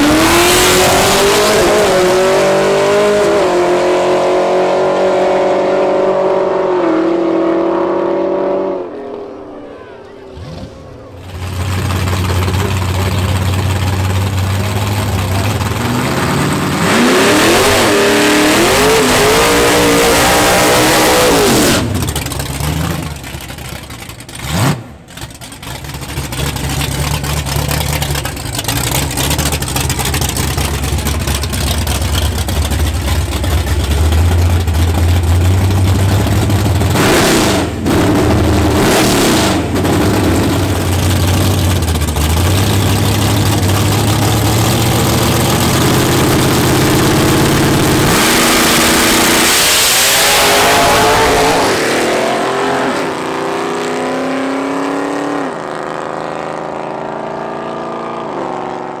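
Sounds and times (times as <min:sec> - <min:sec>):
car accelerating with gear changes: 0:00.0 - 0:59.0
drag car engine rumbling: 0:00.0 - 0:59.0.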